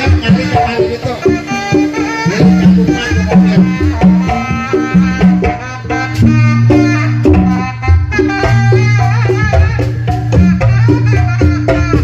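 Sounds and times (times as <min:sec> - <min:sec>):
deep held tones: 0:00.0 - 0:12.0
fast hand drums: 0:00.0 - 0:12.0
melody line: 0:00.0 - 0:12.0.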